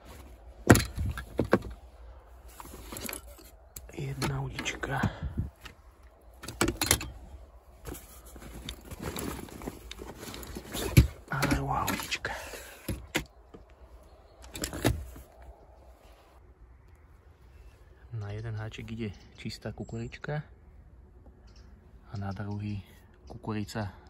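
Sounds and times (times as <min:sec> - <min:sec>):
fabric bag rustling: 0:00.0 - 0:03.7, 0:07.3 - 0:11.3.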